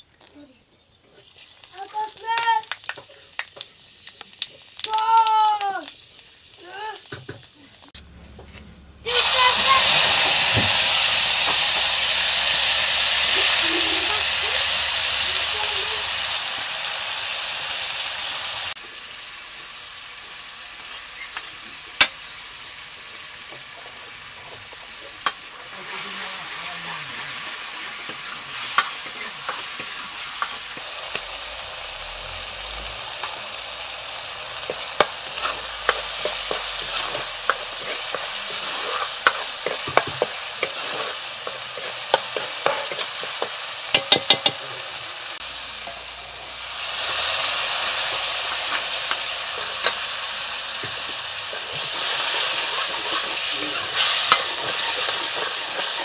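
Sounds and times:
spices sizzling in hot oil: 0.0s - 8.3s, 9.0s - 56.0s
metal ladle knocking on pan: 43.9s - 44.6s.

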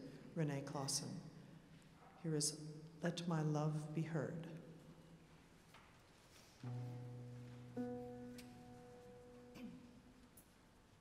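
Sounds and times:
low instrument notes ringing: 6.6s - 10.0s.

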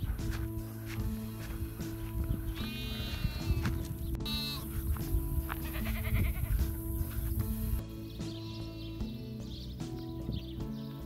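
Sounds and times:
background music: 0.0s - 11.0s
goat bleating: 2.6s - 4.8s, 5.5s - 6.6s.

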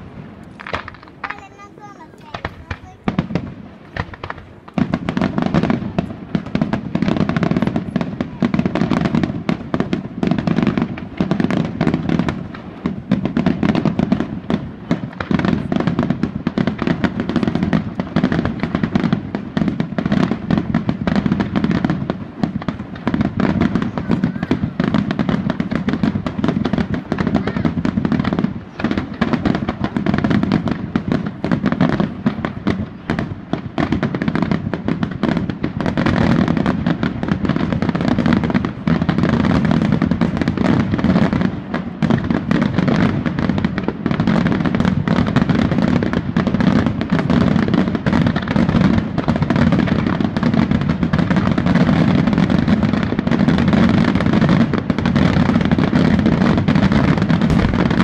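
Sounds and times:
fireworks bursting: 0.0s - 58.0s
continuous rumble: 57.4s - 58.0s.

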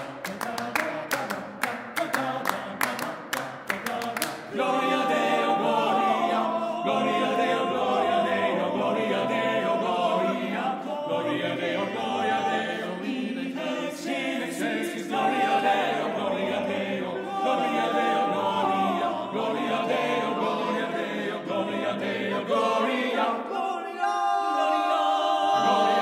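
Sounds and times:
male a cappella harmony singing: 0.0s - 26.0s.

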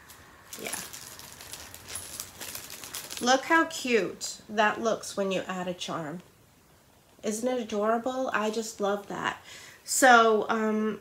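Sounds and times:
metal chain clicking and jingling: 1.0s - 3.1s.

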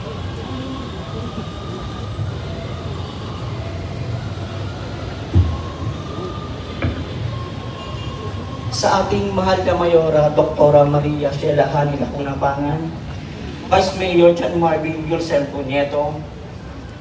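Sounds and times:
faint murmuring voices: 0.0s - 8.8s
city background rumble: 0.0s - 17.0s
sharp thump: 5.3s - 5.6s.

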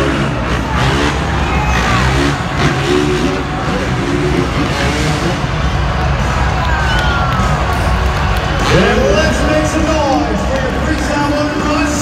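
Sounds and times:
dirt bike engines revving: 0.0s - 12.0s
stadium loudspeaker sound: 0.0s - 12.0s.

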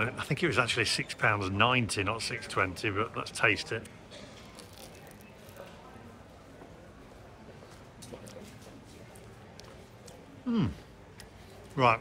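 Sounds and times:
quiet chewing: 3.8s - 6.0s, 7.5s - 11.8s.

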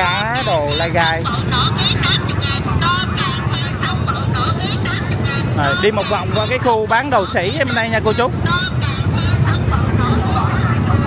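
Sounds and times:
motorbike engines passing: 0.0s - 11.0s
people talking: 0.0s - 11.0s.

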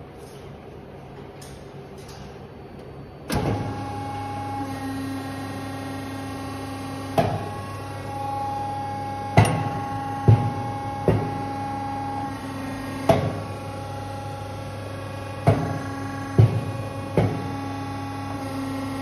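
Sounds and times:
press machine humming: 3.3s - 19.0s
sharp knocks of press: 9.4s - 11.4s, 16.4s - 17.5s.

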